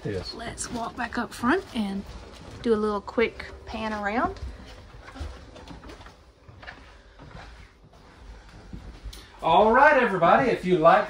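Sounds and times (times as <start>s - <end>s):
faint footsteps: 0.0s - 11.0s.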